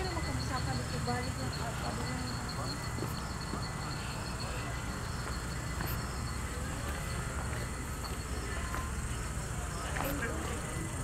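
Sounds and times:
indistinct voices: 0.0 - 11.0
pulsing insect trill: 0.0 - 11.0.

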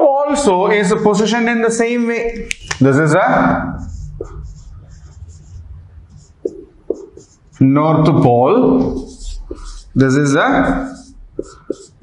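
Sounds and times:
marker squeaking on whiteboard: 2.4 - 7.8, 8.6 - 12.0.

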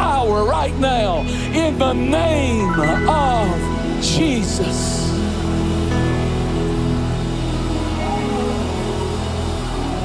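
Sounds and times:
worship band playing soft chords: 0.0 - 10.0.

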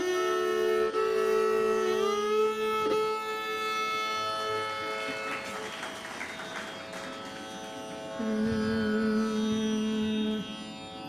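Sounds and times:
steady drone: 4.4 - 11.0
lower held note: 6.8 - 10.8.

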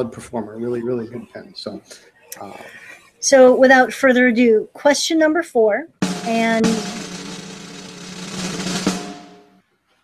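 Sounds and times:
sharp drum hit: 6.0 - 9.6
snare drum roll: 6.0 - 9.6.

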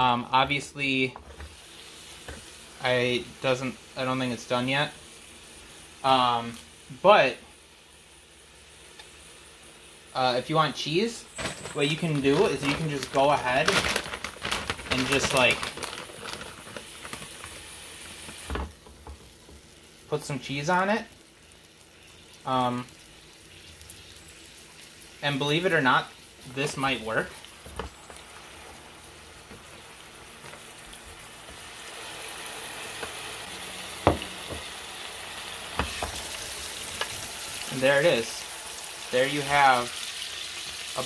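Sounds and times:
meat sizzling in waffle maker: 0.0 - 41.0.

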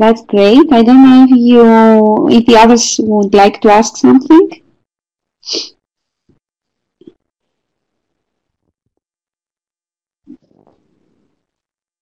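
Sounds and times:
person sneezing: 5.5 - 5.7.

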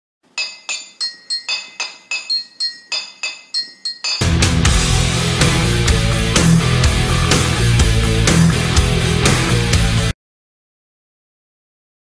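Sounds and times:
glassy clinks: 0.4 - 4.3.

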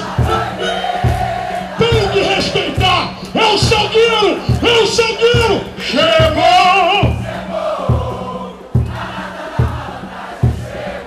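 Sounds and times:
crowd chorus singing: 0.0 - 11.0
deep drum beat: 0.0 - 11.0
man singing over sound system: 1.8 - 7.3.

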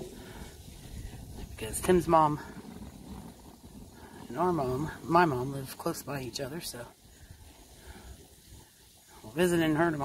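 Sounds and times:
soft even hiss: 0.0 - 10.0
wind buffeting microphone: 0.0 - 10.0.

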